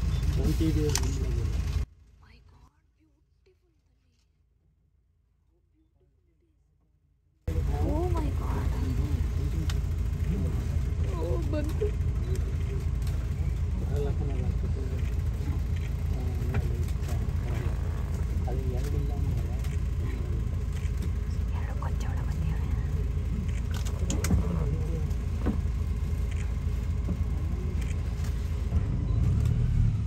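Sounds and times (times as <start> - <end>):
people talking quietly: 0.0 - 1.8, 7.5 - 28.5
car engine idling: 0.0 - 2.4, 7.5 - 30.0.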